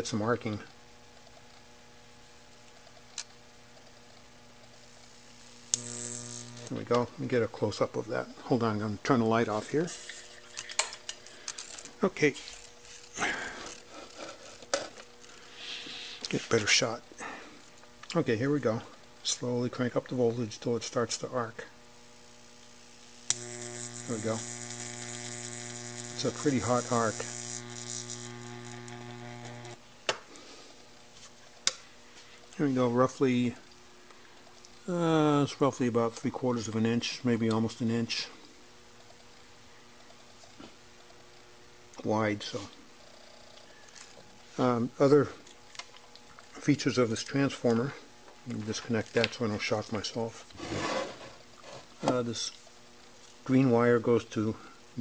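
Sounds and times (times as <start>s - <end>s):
faint electrical hum: 0.0s - 55.0s.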